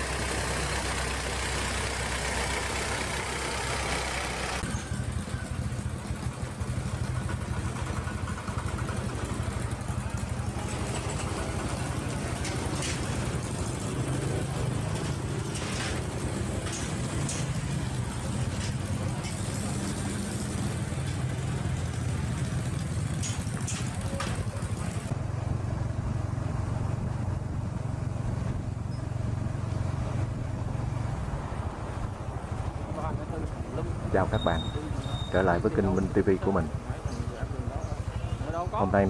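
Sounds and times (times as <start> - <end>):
motorbike engines humming: 0.0 - 39.0.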